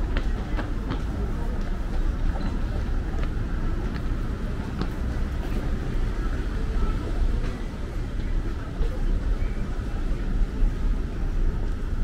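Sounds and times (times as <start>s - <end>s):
people's voices: 0.0s - 12.0s
road traffic rumble: 0.0s - 12.0s.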